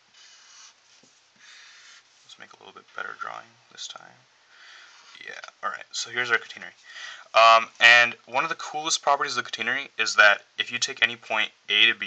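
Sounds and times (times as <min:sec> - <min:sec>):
felt-tip marker scratching paper: 0:00.1 - 0:02.1.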